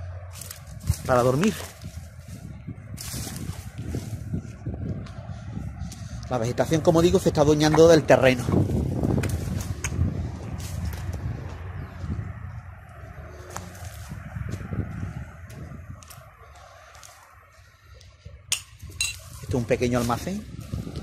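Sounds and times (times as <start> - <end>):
low outdoor rumble: 0.0 - 21.0
brushing through dry weeds: 0.2 - 6.2, 8.6 - 12.3, 12.9 - 21.0
footsteps on gravelly ground: 0.2 - 21.0.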